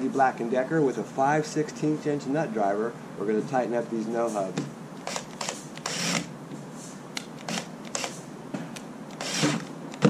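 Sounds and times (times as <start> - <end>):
cordless drill driving screws: 5.0 - 6.3, 7.5 - 8.2, 9.2 - 9.7
drill clutch clicks: 5.0 - 6.3, 7.4 - 8.2, 9.1 - 10.0.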